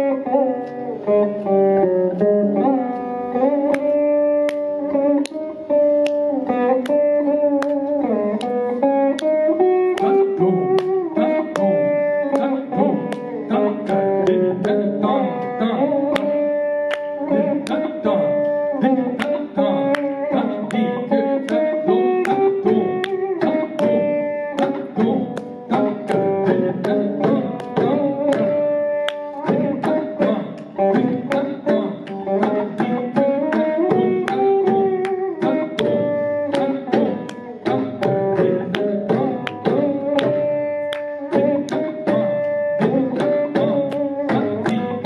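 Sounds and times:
plucked veena melody: 0.0 - 45.0
steady percussion: 3.6 - 45.0.

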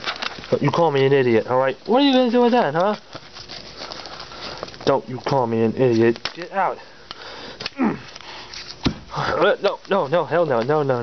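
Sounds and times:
noisy breathing through nose: 3.7 - 4.8, 6.8 - 9.3.

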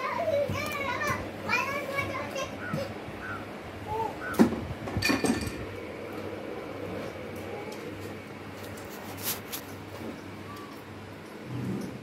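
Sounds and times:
parakeet chattering: 2.1 - 4.4.

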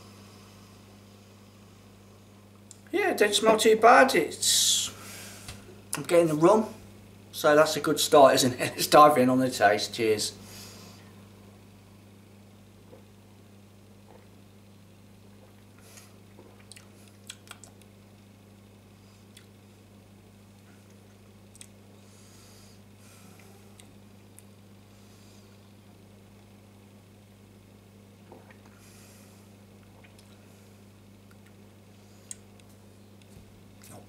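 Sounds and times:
low electrical hum: 0.0 - 34.0
sipping and swallowing: 14.0 - 14.4, 15.2 - 17.9, 28.2 - 28.8, 29.8 - 30.5.

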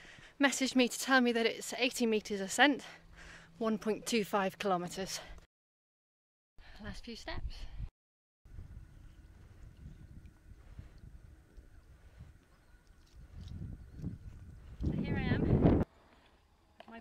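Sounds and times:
wind rumble on microphone: 8.5 - 15.9.

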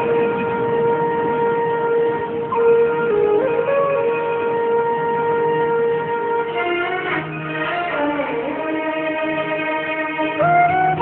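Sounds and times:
flute-like long held note: 0.0 - 11.0.

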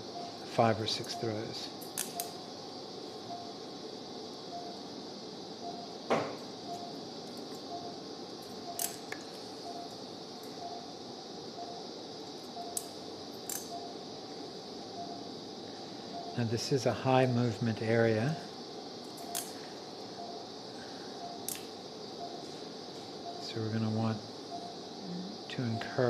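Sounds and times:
steady hiss: 0.0 - 26.0.

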